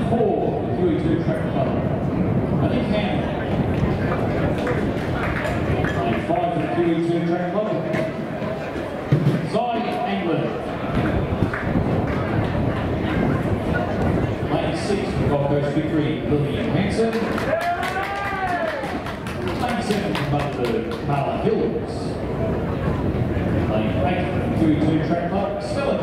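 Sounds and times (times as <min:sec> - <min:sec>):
steady background noise: 0:00.0 - 0:26.0
hand claps: 0:17.1 - 0:21.1
person cheering: 0:17.4 - 0:19.0.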